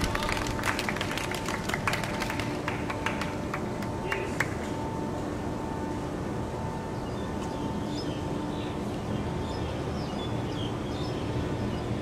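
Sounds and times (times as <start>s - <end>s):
spectators clapping: 0.0s - 4.8s.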